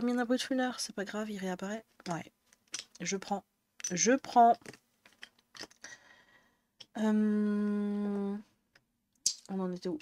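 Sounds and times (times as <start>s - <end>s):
soft rustles of pencils: 3.9s - 5.8s.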